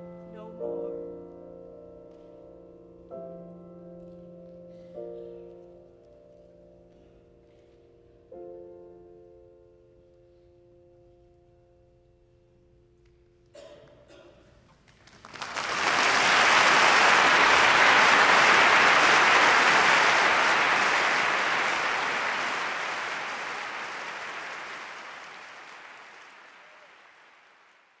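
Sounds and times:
concert audience applauding: 14.9s - 28.0s.

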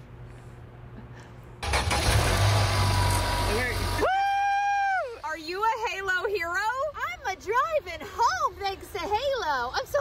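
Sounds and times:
car engine starting and running: 1.6s - 4.2s.

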